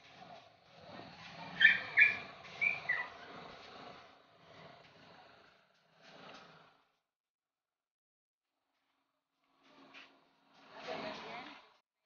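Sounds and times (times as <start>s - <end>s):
faint steady background: 0.0s - 12.0s
bird calling: 1.5s - 3.4s.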